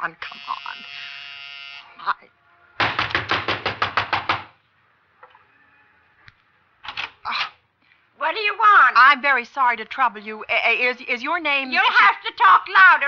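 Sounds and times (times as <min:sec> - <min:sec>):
electric door buzzer: 0:00.2 - 0:02.0
knocking on door: 0:02.8 - 0:04.6.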